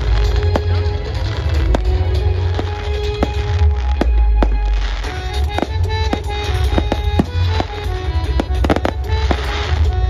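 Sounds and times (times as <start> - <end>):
fireworks bangs: 0.0 - 10.0
music with long held notes: 0.0 - 10.0.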